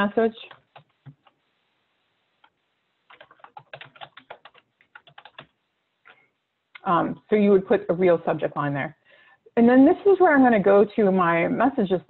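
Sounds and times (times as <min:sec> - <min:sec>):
typing on computer keyboard: 0:00.4 - 0:01.4, 0:02.4 - 0:05.6.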